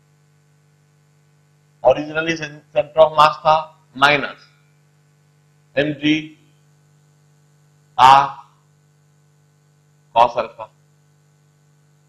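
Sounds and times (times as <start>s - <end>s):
low electrical mains hum: 0.0s - 12.0s
person speaking: 1.8s - 4.4s, 5.8s - 6.4s, 8.0s - 8.5s, 10.2s - 10.7s.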